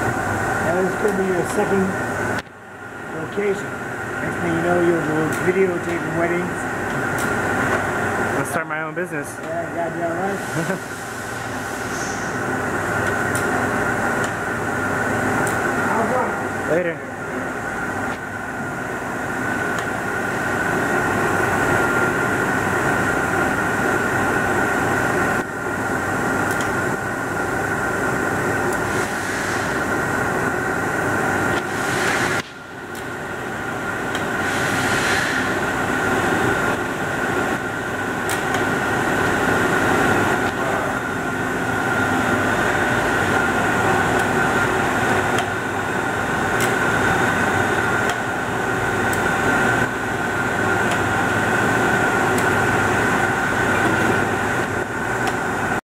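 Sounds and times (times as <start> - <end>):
industrial machinery hum: 0.0 - 55.8.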